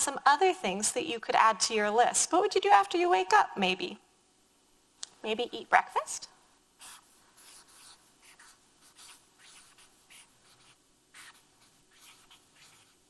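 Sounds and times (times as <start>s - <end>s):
marker writing on paper: 6.8s - 13.0s.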